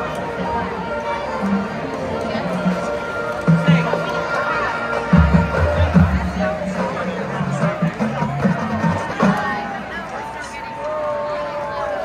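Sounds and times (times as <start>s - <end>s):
marching band playing: 0.0s - 10.0s
crowd voices: 0.0s - 12.0s.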